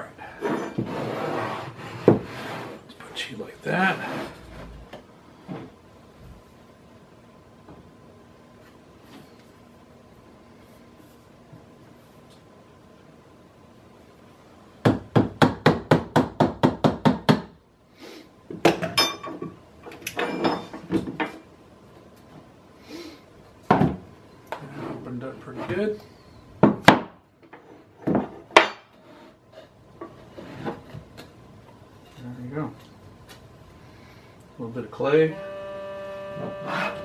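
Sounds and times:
boards and tools clattering: 0.4s - 2.8s, 26.6s - 31.2s.

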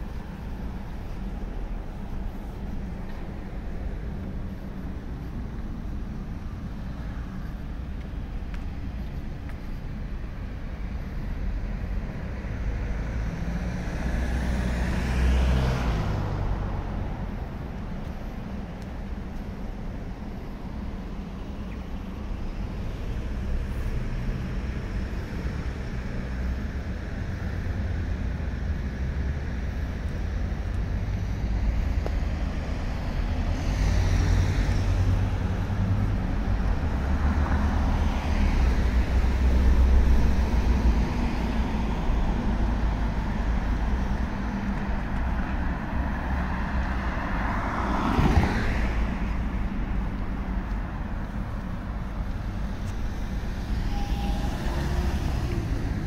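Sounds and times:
low rumble of car traffic: 0.0s - 56.0s
car passing close: 12.3s - 17.4s, 30.9s - 56.0s.

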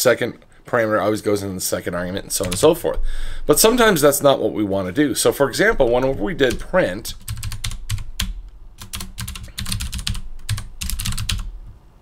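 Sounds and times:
typing on computer keyboard: 2.4s - 2.6s, 5.8s - 11.8s.

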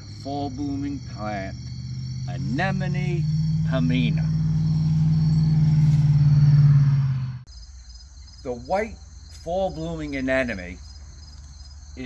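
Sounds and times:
vehicle engine hum: 0.0s - 7.6s
crickets chirping: 0.0s - 12.0s.

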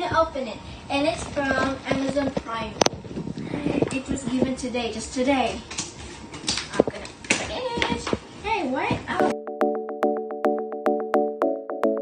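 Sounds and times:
girl talking: 0.0s - 5.7s, 6.8s - 9.3s.

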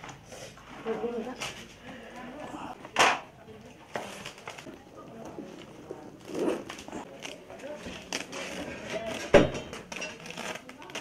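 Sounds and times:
leaves being folded: 3.6s - 11.0s.

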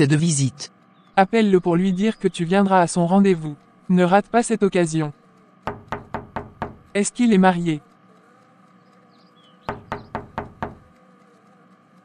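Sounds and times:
knocking on a door: 5.7s - 7.0s, 9.7s - 10.9s.

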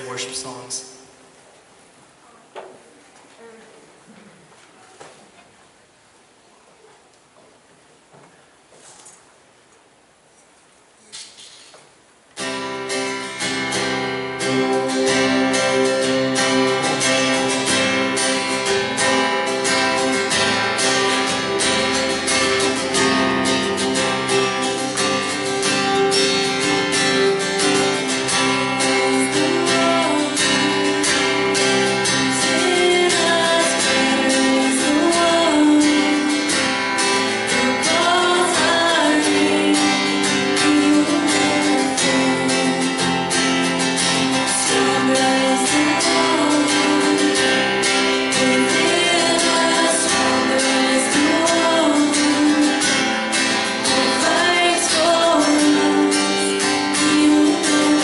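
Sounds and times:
strummed acoustic guitar: 12.4s - 58.0s
electric bass guitar: 12.5s - 58.0s
person singing: 26.6s - 58.0s.

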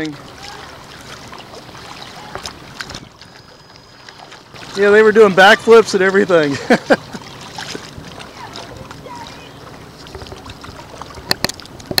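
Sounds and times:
faint distant sounds: 0.0s - 12.0s
water moving: 0.0s - 12.0s
wind: 0.0s - 12.0s.

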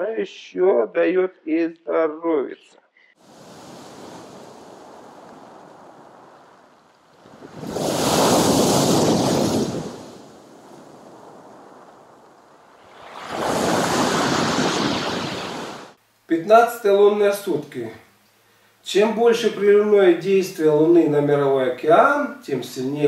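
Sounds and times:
surf washing: 3.2s - 16.0s
waves breaking on pebble beach: 3.2s - 16.0s.

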